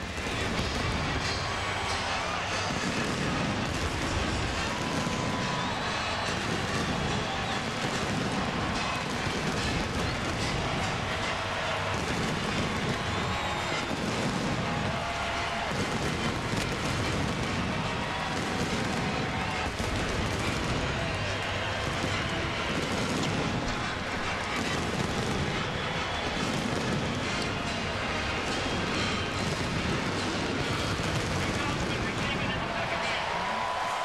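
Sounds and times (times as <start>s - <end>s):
marching band music: 0.0s - 34.0s
stadium crowd noise: 0.0s - 34.0s.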